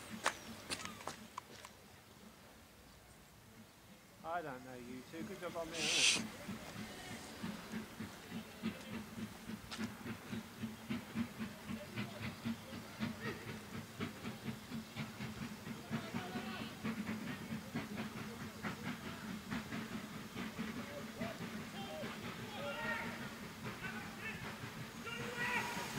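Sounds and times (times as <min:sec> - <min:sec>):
steam locomotive chuffing: 0:03.3 - 0:25.9
steam hiss: 0:04.8 - 0:25.9.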